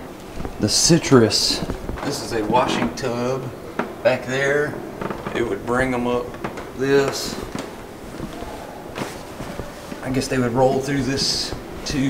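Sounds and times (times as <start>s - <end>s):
steady room hum: 0.0s - 12.0s
footsteps on wooden floor: 1.5s - 4.0s, 5.0s - 12.0s.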